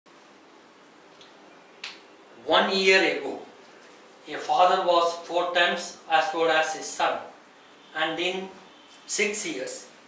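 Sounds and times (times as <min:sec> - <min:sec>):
faint room hiss: 0:00.1 - 0:10.0.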